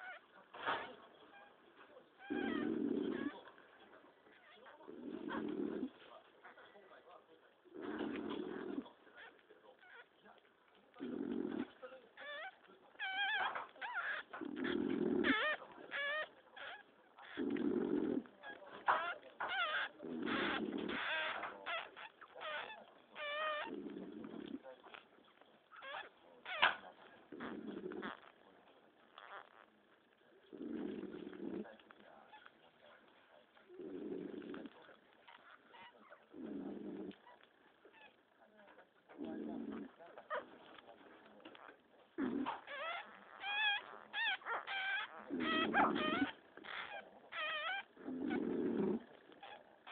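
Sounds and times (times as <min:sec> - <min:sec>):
puppies whimpering and squealing: 0:00.0 - 0:00.3, 0:02.2 - 0:03.5, 0:12.2 - 0:17.6, 0:18.4 - 0:25.0, 0:25.7 - 0:28.3, 0:42.4 - 0:49.9.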